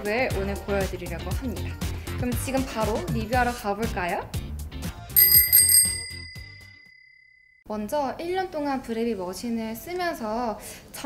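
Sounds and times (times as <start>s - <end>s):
bright bell ding: 5.2s - 7.3s.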